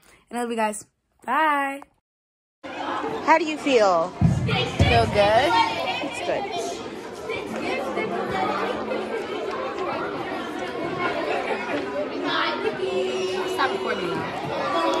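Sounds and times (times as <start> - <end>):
crowd chatter: 2.6 - 15.0.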